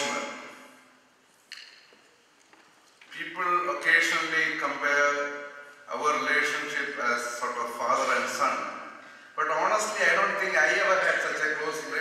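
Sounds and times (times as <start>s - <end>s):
man speaking through microphone: 0.0s - 0.6s, 3.1s - 12.0s.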